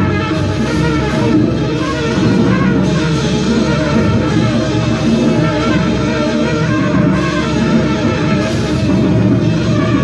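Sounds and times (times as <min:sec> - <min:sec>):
drum kit: 0:00.0 - 0:10.0
saxophone: 0:00.0 - 0:10.0
trumpet: 0:00.0 - 0:10.0.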